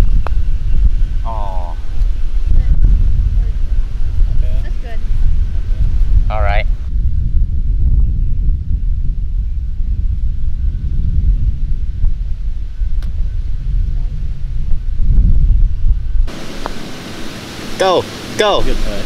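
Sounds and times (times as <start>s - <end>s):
loud low rumble: 0.0s - 17.3s
wind buffeting microphone: 0.0s - 17.8s
steady hiss: 16.3s - 19.0s.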